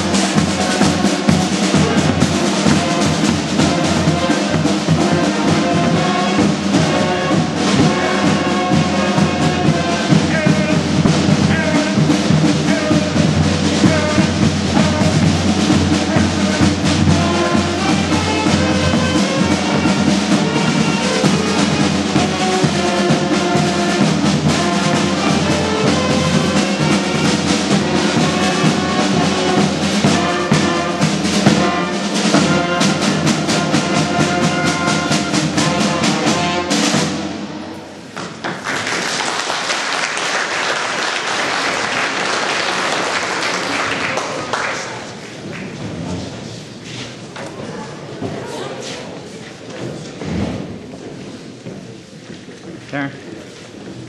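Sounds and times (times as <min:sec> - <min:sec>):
snare and bass drums: 0:00.0 - 0:37.5
horns and saxophones: 0:00.0 - 0:38.2
marching band playing: 0:00.0 - 0:49.0.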